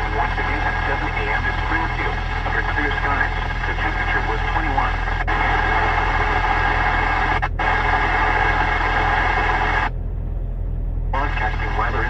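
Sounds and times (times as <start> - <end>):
radio static hiss: 0.0 - 9.9, 11.2 - 12.0
low steady hum: 0.0 - 12.0.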